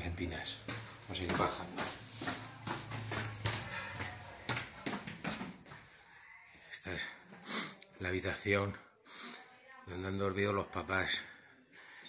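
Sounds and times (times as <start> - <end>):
footsteps going down stairs: 0.0 - 6.0.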